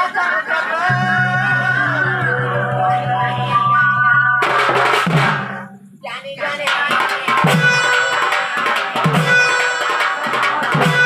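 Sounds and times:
keyboard melody: 0.9s - 6.0s
percussion crash: 0.9s - 11.0s.

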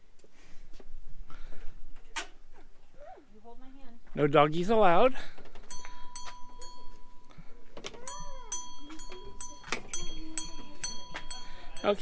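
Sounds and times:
metal wind chimes tinkling: 5.5s - 12.0s
murmur of voices: 7.3s - 12.0s.

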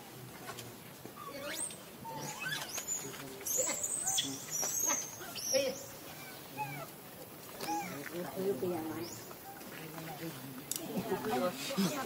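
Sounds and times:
high squeaky calls: 1.2s - 7.0s, 7.6s - 9.7s.

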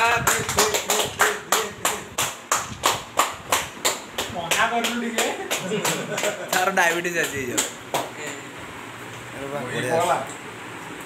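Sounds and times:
people clapping in rhythm: 0.0s - 8.5s.

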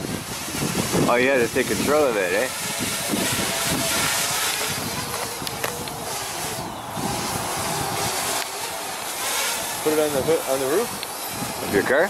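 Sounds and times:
drone propellers whirring: 0.0s - 12.0s
wind on microphone: 0.0s - 12.0s.

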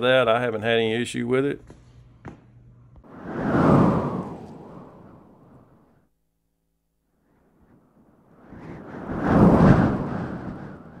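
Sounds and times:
rumbling whoosh: 3.1s - 5.8s.

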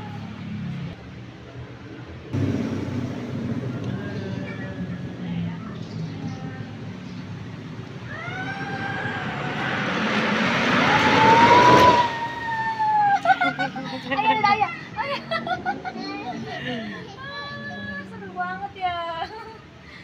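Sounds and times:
long rising cry: 8.0s - 13.9s
excited cries: 8.1s - 10.0s
tube rushing down slide: 8.1s - 13.3s
laughter: 13.0s - 17.2s, 19.0s - 19.8s.

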